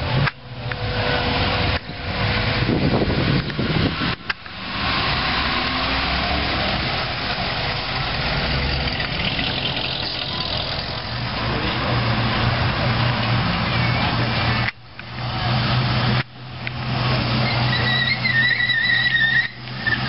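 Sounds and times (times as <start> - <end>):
car engine driving past: 0.7 - 13.6.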